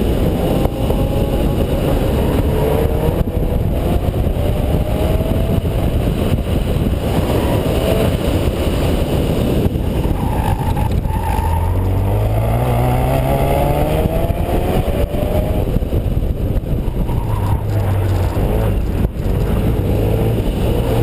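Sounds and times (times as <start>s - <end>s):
car engine revving: 0.0s - 21.0s
wind on microphone: 0.0s - 21.0s.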